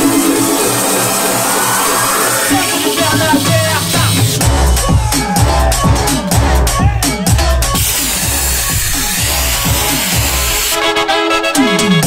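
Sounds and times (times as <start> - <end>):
synth chords: 0.0 - 12.0
kick drum beat: 3.4 - 9.0.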